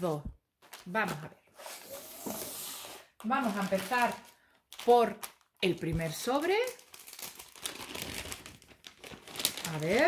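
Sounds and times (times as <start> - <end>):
envelope crinkling and rustling: 0.6 - 1.3, 3.2 - 10.0.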